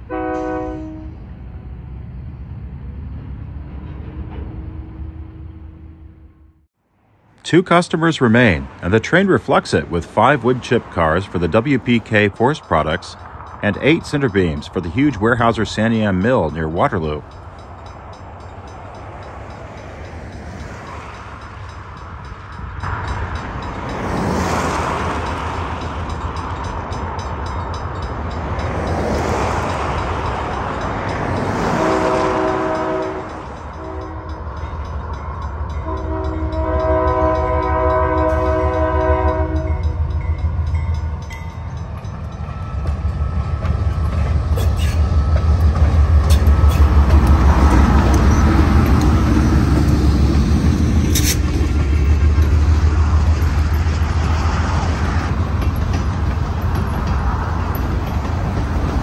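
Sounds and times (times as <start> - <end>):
locomotive horn blasts: 0.0 - 1.3, 31.6 - 34.4, 35.7 - 40.0
freight cars rolling on rails: 7.5 - 59.0
locomotive engine rumble: 7.6 - 59.0.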